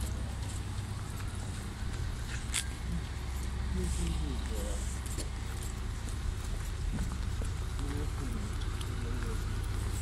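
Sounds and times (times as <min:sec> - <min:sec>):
brisk footsteps on pavement: 0:00.0 - 0:10.0.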